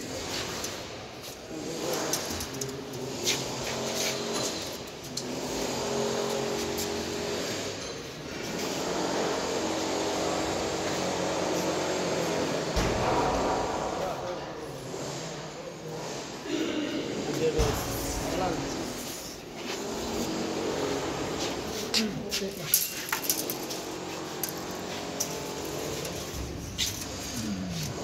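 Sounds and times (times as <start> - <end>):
mechanical background noise: 0.0 - 28.0
men talking: 12.9 - 19.6.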